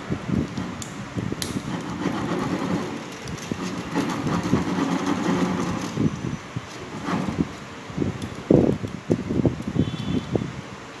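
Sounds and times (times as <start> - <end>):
low mechanical rumble: 0.0 - 10.7
copper wire rustling and scraping: 0.4 - 8.4.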